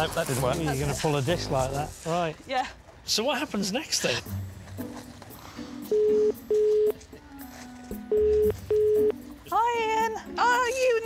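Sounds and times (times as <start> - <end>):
faint background music: 0.0 - 11.0
telephone ringing tone: 5.9 - 7.0, 8.1 - 9.2.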